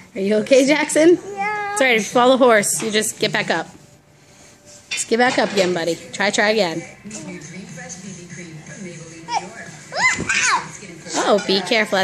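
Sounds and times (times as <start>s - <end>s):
young child squealing: 9.9s - 10.6s.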